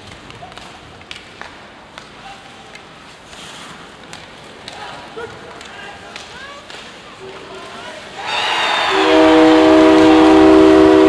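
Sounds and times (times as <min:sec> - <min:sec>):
hockey sticks and puck clacking: 0:00.0 - 0:08.3.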